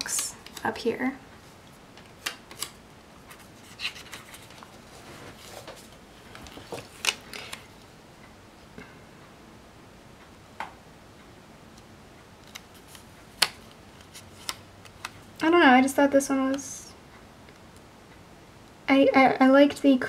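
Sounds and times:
soft paper rustling: 0.0s - 7.9s.

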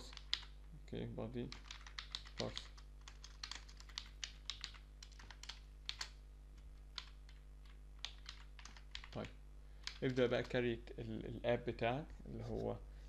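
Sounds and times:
faint keyboard typing: 0.0s - 0.8s, 1.4s - 10.7s.

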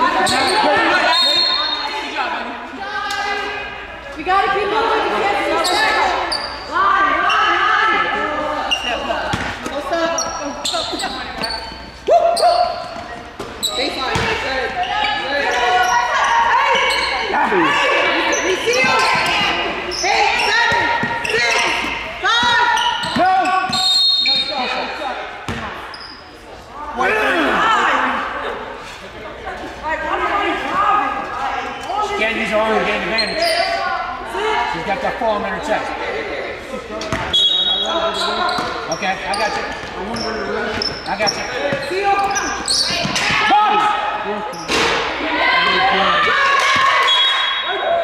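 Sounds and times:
sneakers squeaking: 0.0s - 4.6s, 5.2s - 26.9s, 28.5s - 48.0s
people calling out: 0.0s - 25.1s.

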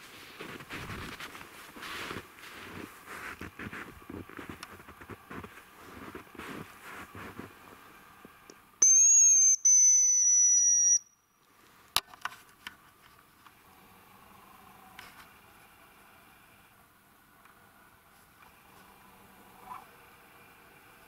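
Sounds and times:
footsteps crunching in snow: 0.0s - 8.3s
high decoy whistles: 8.8s - 11.2s.

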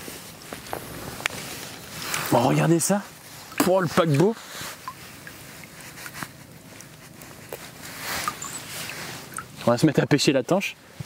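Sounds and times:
water splashing and dripping: 0.5s - 9.8s.

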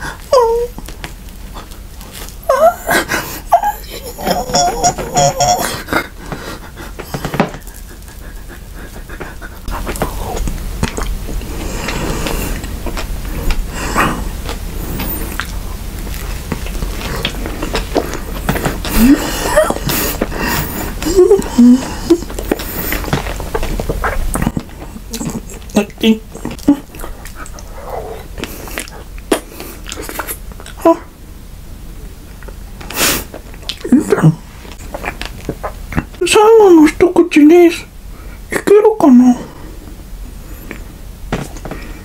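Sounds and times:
chewing and mouth clicks: 6.3s - 19.1s, 22.2s - 30.8s, 33.3s - 33.9s, 34.7s - 36.2s.

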